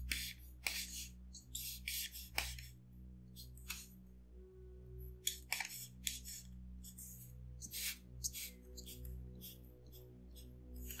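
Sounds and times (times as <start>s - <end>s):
marker scratching on paper: 0.0s - 2.8s, 5.3s - 11.0s
faint background music: 0.0s - 11.0s.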